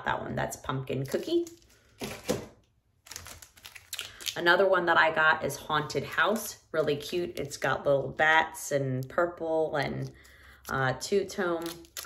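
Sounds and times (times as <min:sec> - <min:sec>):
plastic packaging rustling: 0:01.2 - 0:04.4
plastic packaging clicks and crinkles: 0:01.3 - 0:04.4, 0:11.6 - 0:12.0.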